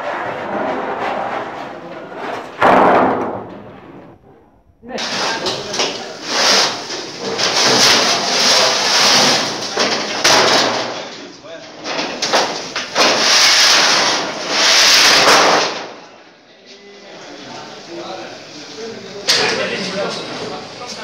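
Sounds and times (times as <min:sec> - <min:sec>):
sheet metal rattling and clattering: 0:00.0 - 0:04.4, 0:05.0 - 0:11.1, 0:11.8 - 0:15.9.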